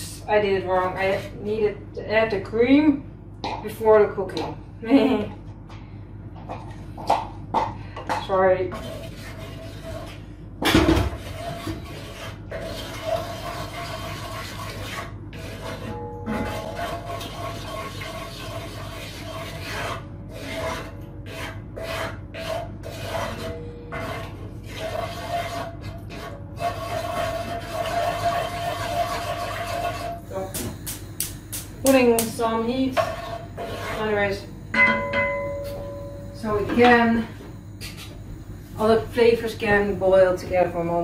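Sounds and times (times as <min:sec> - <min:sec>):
wooden spoon scraping a pot: 0:08.1 - 0:10.4, 0:11.0 - 0:30.8, 0:31.8 - 0:38.2
spoon knocking on pot: 0:34.8 - 0:37.0.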